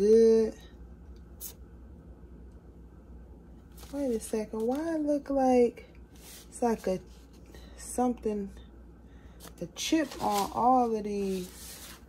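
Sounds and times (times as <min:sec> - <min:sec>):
low steady hum: 0:00.0 - 0:12.0
paper rustle: 0:03.7 - 0:04.9, 0:09.4 - 0:12.0.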